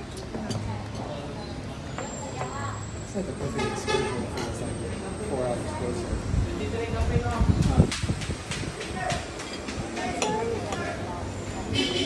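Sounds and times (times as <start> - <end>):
tableware clicking and clinking: 9.4 - 10.9.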